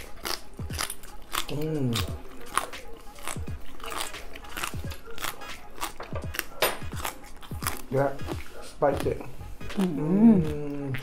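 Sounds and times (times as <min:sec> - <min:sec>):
cucumber crunching: 0:00.0 - 0:11.0.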